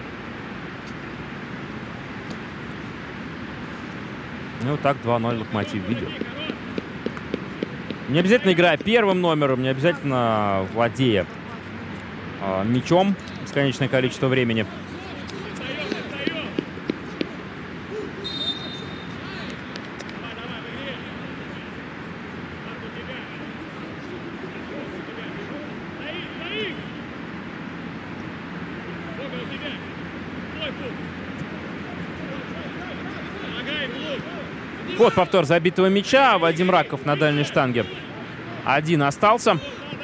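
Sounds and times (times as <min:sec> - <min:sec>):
steady background hiss: 0:00.0 - 0:40.0
players shouting: 0:04.8 - 0:10.4, 0:13.6 - 0:21.8, 0:22.7 - 0:27.1, 0:28.9 - 0:40.0.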